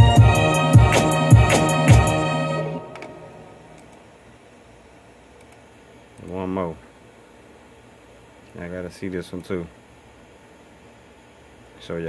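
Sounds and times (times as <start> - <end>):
music beat: 0.0 - 3.9.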